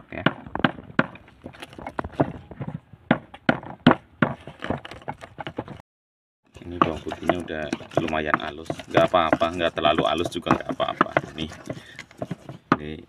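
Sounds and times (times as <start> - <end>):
wooden pestle pounding garlic: 0.0 - 5.8, 6.5 - 13.0.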